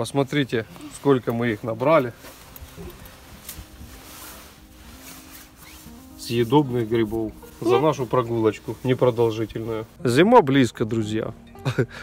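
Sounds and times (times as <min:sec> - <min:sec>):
rustling in wicker basket: 0:00.0 - 0:10.0
soft background music: 0:00.0 - 0:12.0.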